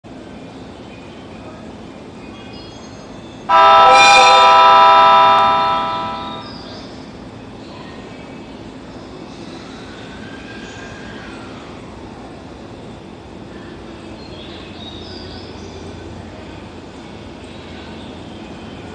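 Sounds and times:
station and train noise: 0:00.1 - 0:18.9
train horn blast: 0:03.5 - 0:06.5.

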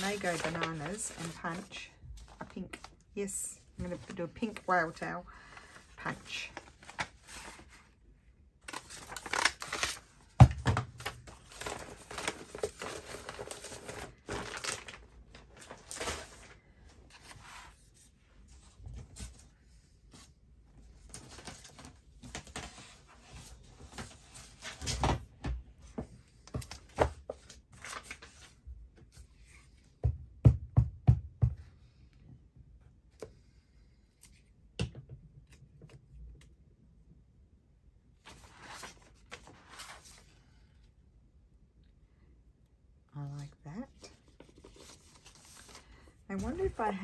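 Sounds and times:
paper rustling: 0:00.0 - 0:02.9, 0:44.1 - 0:47.0.

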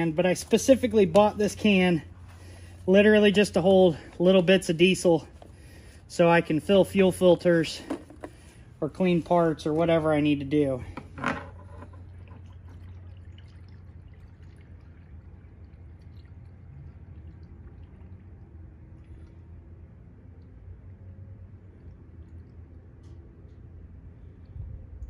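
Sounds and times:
fuel pouring from can: 0:11.6 - 0:20.6
steady low rumble: 0:14.0 - 0:25.0.

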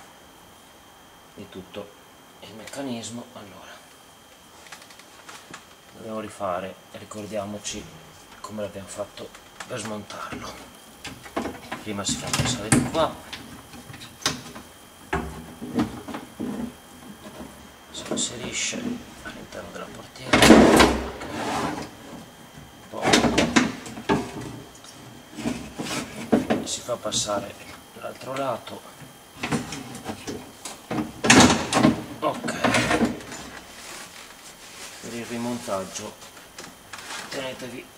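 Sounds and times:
rustling: 0:33.3 - 0:37.4.

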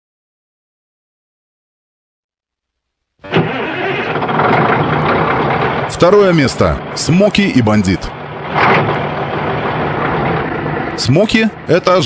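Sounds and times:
diesel truck engine starting: 0:03.2 - 0:12.0.

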